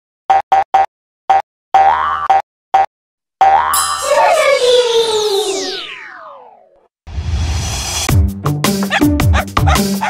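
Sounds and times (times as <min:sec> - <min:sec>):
sparkly shimmer: 0:03.8 - 0:05.9.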